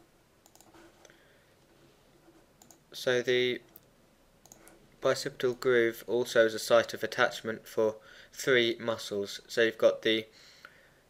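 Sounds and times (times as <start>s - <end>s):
computer mouse clicks: 0.4s - 1.2s, 2.6s - 2.8s, 3.7s - 4.8s.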